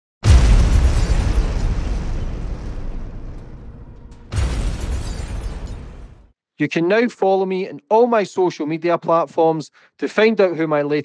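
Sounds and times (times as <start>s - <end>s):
deep explosion boom: 0.2s - 6.3s.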